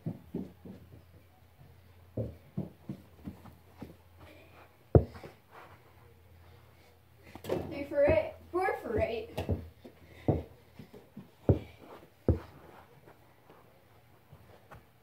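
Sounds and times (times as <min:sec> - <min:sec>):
ball thudding: 0:05.0 - 0:05.3
person speaking: 0:07.6 - 0:09.6.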